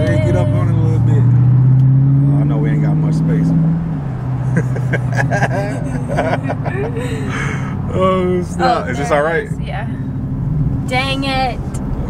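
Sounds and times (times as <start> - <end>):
car engine droning in cabin: 0.0 - 12.0.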